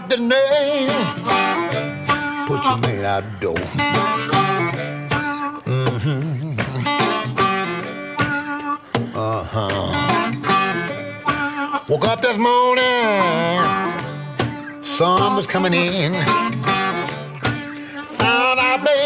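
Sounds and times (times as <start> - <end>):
acoustic blues guitar: 0.0 - 19.0
person singing: 0.0 - 19.0.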